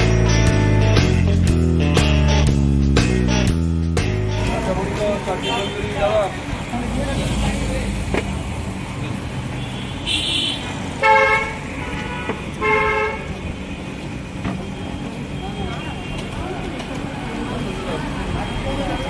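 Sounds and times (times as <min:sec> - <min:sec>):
steady traffic noise: 0:00.0 - 0:19.0
voices: 0:04.2 - 0:09.8, 0:14.3 - 0:19.0
vehicle horns honking: 0:04.5 - 0:06.3, 0:09.5 - 0:13.4.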